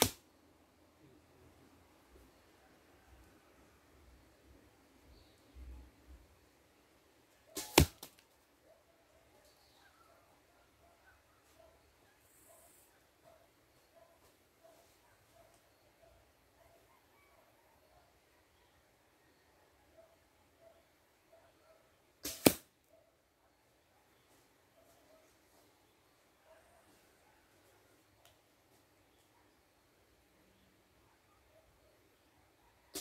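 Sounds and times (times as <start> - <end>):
arrow striking target: 0.0 - 0.2, 7.6 - 8.2, 22.2 - 22.7.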